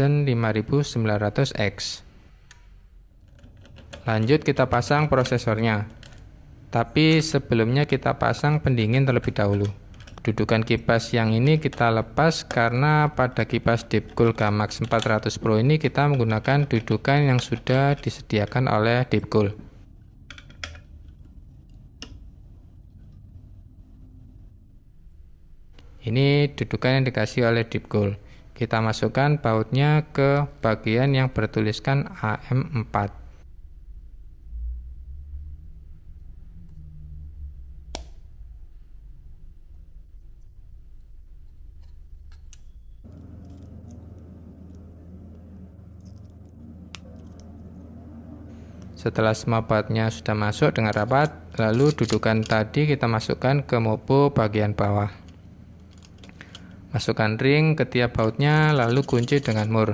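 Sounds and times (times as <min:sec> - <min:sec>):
low room hum: 0:00.0 - 0:59.9.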